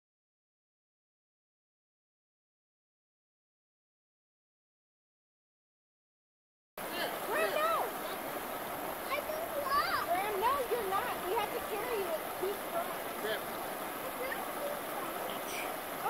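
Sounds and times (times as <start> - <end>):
river flowing over rocks: 6.8 - 16.0
high voices calling out: 7.1 - 16.0.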